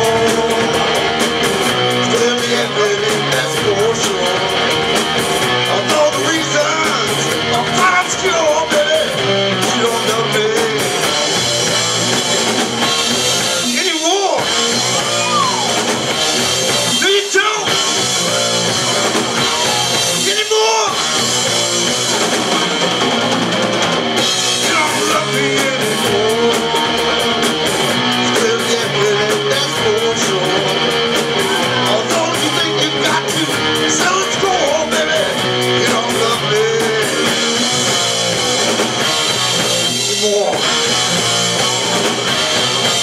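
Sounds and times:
live rock band playing: 0.0 - 43.0.

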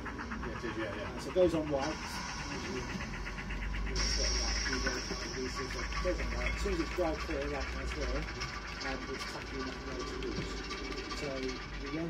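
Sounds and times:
indistinct voices talking: 0.0 - 12.0
steady low hum: 0.0 - 12.0.

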